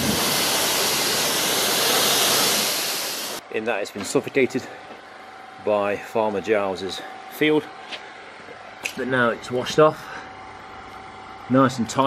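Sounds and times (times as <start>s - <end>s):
pressure washer spray hissing: 0.0s - 3.4s.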